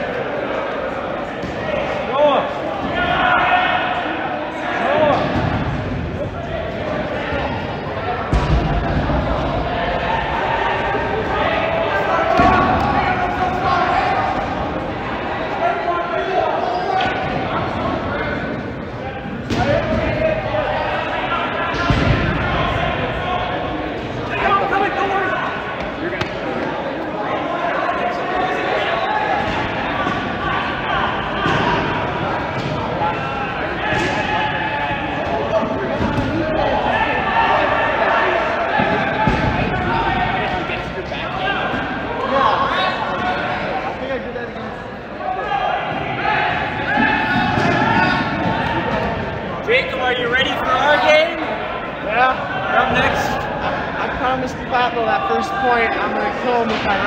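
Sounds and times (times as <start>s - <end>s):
people talking: 0.0s - 57.0s
dodgeballs bouncing and thudding: 1.2s - 3.8s, 4.9s - 15.5s, 16.9s - 26.9s, 28.8s - 43.6s, 45.8s - 50.6s.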